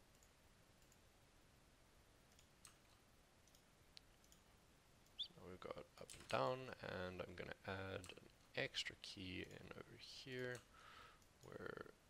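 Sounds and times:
computer mouse clicks: 2.3 - 5.2.

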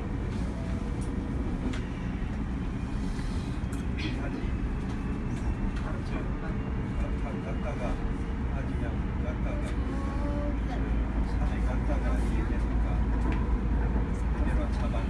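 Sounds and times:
train wheels rumbling on rail: 0.0 - 15.0.

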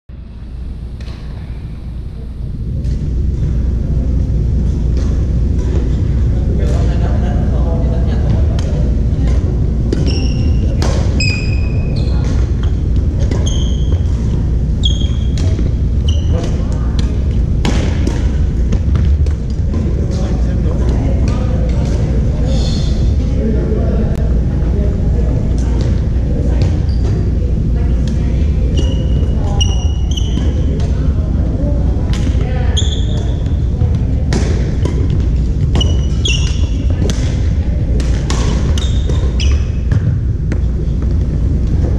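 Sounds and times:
low rumble of hall: 0.1 - 41.9
voices: 0.9 - 41.9
racket hitting shuttlecock: 9.3 - 11.3, 12.2 - 19.9, 34.3 - 40.7
sneakers squeaking on wooden floor: 9.9 - 19.8, 26.5 - 27.4, 28.7 - 31.0, 32.4 - 33.6, 34.8 - 37.0, 38.3 - 40.2.

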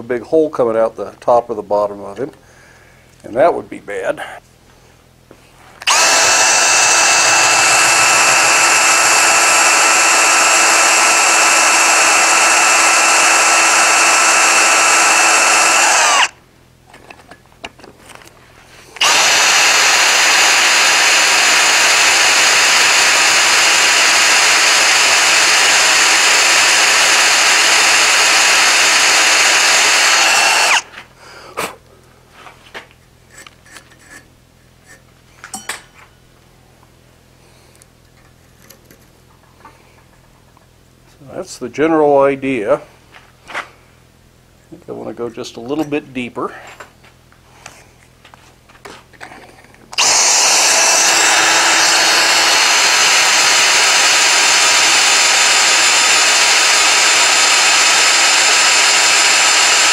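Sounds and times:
cordless drill boring into iron: 5.8 - 16.4, 19.0 - 30.9, 49.9 - 59.9.

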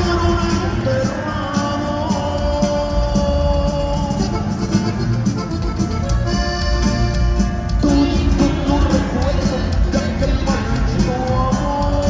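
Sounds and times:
band playing with accordion: 0.0 - 12.0.

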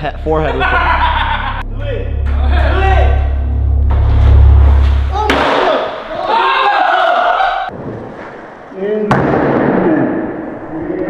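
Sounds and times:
bass-heavy music: 0.0 - 6.3.

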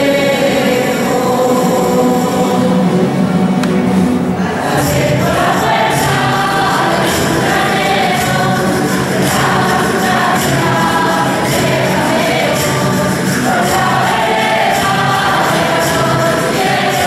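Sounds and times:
choir singing with accompaniment: 0.0 - 17.0.

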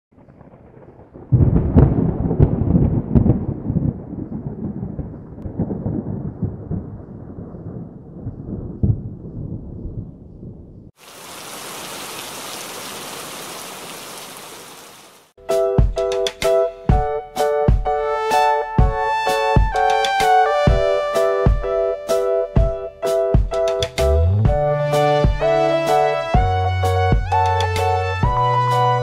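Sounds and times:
thunderclap rolling rumble: 0.2 - 10.9
heavy rain hiss: 11.0 - 15.3.

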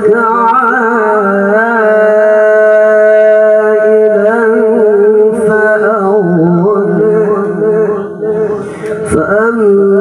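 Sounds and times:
man reciting melodically: 0.0 - 10.0.

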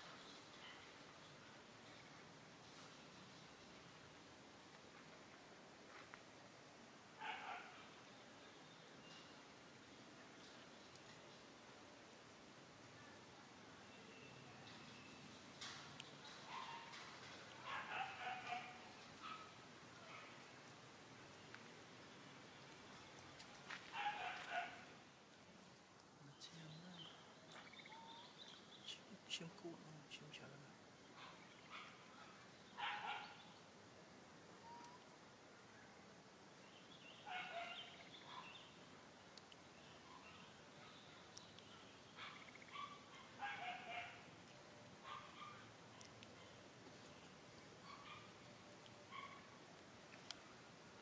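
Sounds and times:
faint outdoor background: 0.0 - 51.0.

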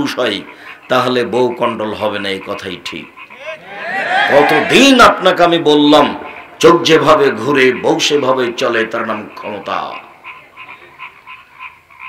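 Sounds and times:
rapid pulsing animal calls: 0.0 - 12.0.

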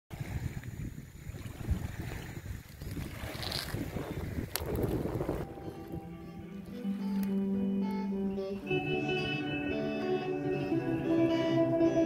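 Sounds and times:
wind buffeting microphone: 0.1 - 7.6
small waves lapping: 0.1 - 9.6
steady instrument notes: 5.4 - 12.0.

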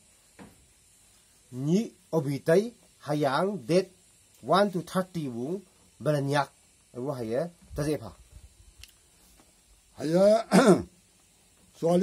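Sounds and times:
man's short vocal sounds: 10.4 - 10.9.

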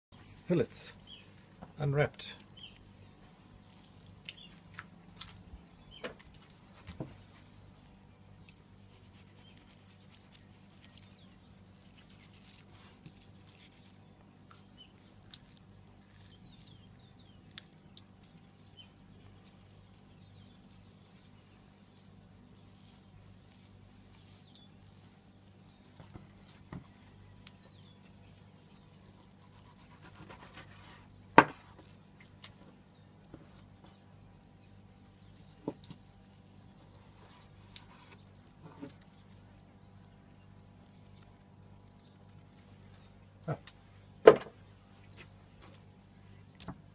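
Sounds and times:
faint high-pitched chirping: 0.2 - 4.6, 16.1 - 31.1, 32.6 - 43.6
high-pitched chirps: 28.0 - 28.5, 40.9 - 42.6.

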